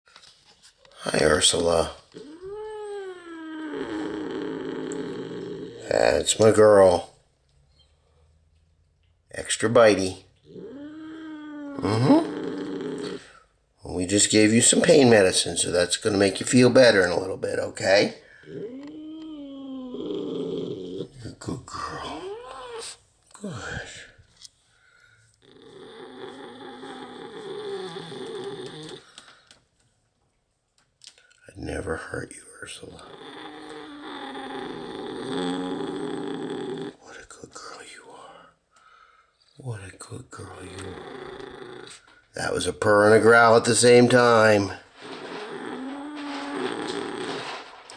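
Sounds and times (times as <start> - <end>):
cat yowling and growling: 2.1 - 6.1, 10.4 - 13.4, 18.4 - 21.2, 21.9 - 23.0, 25.4 - 29.0, 33.0 - 37.0, 45.2 - 47.5.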